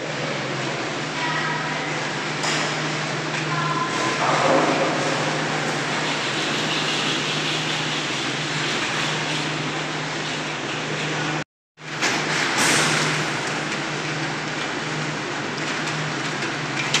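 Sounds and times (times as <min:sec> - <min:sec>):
gondola station machinery running: 0:00.0 - 0:17.0.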